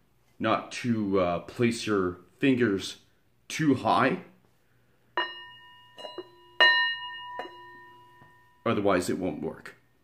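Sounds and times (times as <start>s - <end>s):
singing bowl struck with mallet: 5.2s - 8.6s.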